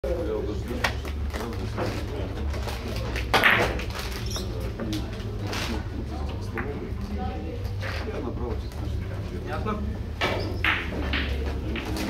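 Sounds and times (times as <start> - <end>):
billiard balls clacking: 0.7 - 5.4, 10.1 - 12.0
cue striking ball: 3.3 - 3.9, 10.2 - 12.0.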